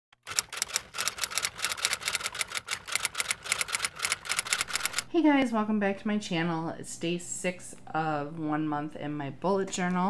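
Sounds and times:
typewriter keys clacking: 0:00.2 - 0:05.1.

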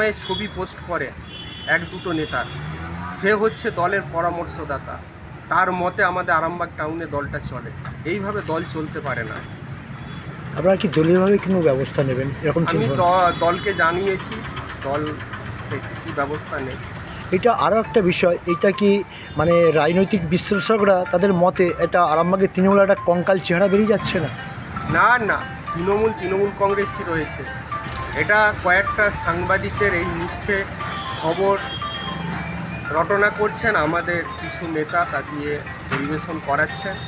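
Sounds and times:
man speaking: 0:10.6 - 0:14.3, 0:15.8 - 0:27.5
man talking: 0:10.6 - 0:27.5, 0:28.1 - 0:31.7, 0:32.9 - 0:37.0
background music: 0:10.6 - 0:37.0.

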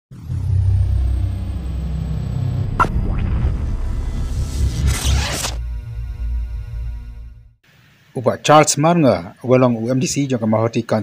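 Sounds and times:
swoosh effect: 0:00.1 - 0:06.0.

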